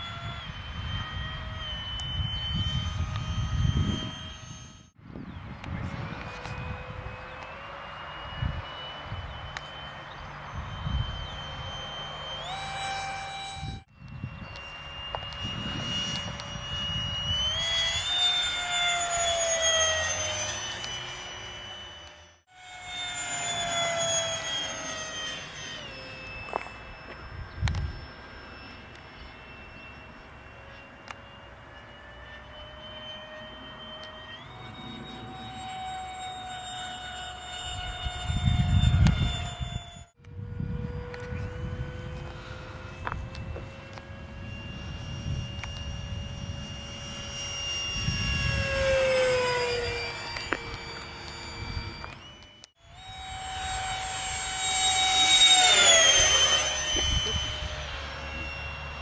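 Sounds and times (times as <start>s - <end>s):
model jet whine overhead: 0.0s - 59.0s.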